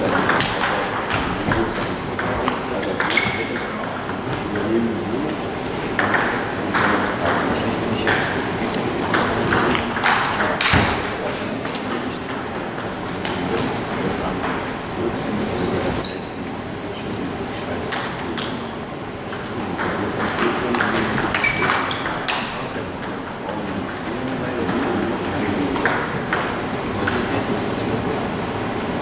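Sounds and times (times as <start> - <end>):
shoe squeaks on floor: 3.1 - 3.6, 13.8 - 17.1, 21.3 - 22.3.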